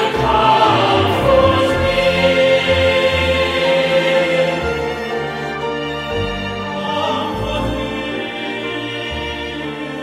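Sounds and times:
choral singing: 0.0s - 10.0s.

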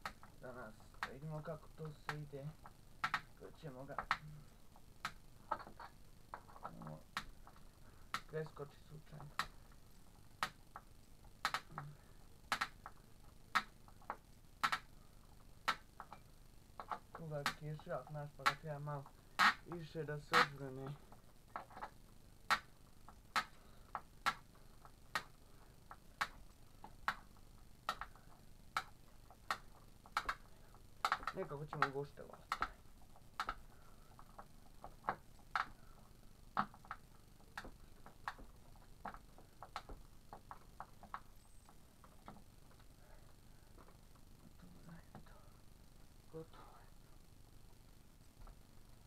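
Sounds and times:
sharp ticking clicks: 0.0s - 46.8s
fainter ticks: 10.4s - 21.9s, 22.5s - 45.6s.

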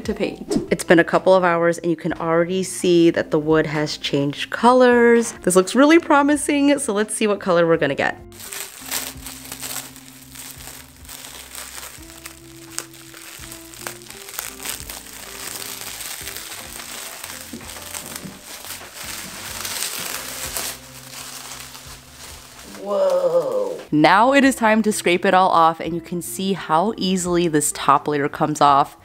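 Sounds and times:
background music: 0.0s - 29.0s
plastic wrap crinkling: 8.3s - 23.8s.

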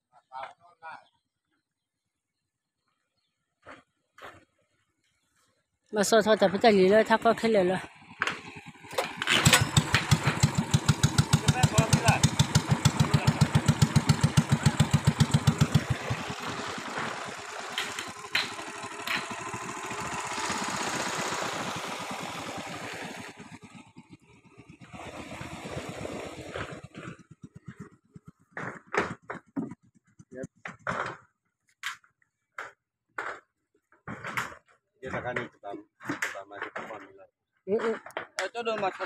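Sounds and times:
boat engine puttering: 6.0s - 31.0s.

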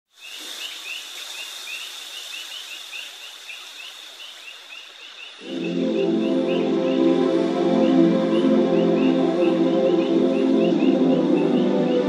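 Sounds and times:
soft synth chords: 5.4s - 12.0s.

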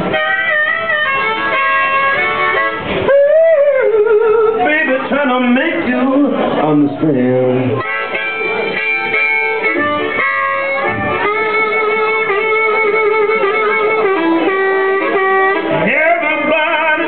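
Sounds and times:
amplified blues harmonica: 0.0s - 6.0s, 7.7s - 17.0s.

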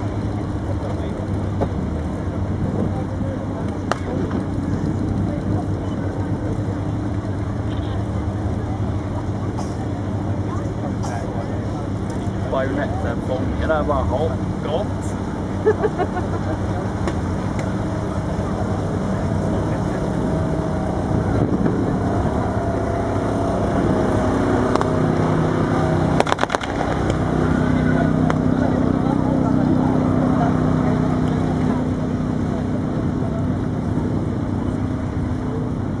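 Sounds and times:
tank engines droning: 0.0s - 36.0s
sharp cracks: 26.1s - 27.6s.

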